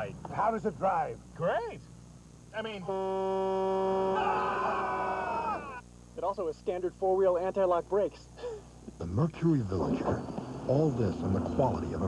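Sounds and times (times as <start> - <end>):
higher-pitched yelling: 3.8 - 5.8
man yelling: 4.1 - 5.8.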